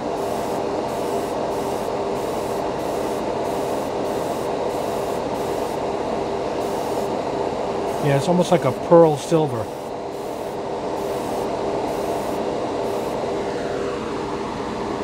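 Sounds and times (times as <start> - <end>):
exhaust fan humming: 0.0 - 15.0
airbrush hissing bursts: 0.1 - 5.8, 6.6 - 7.1, 9.7 - 13.2.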